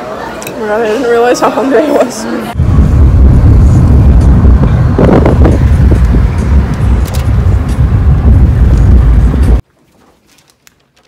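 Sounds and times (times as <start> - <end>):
car road and wind rumble: 2.6 - 9.6.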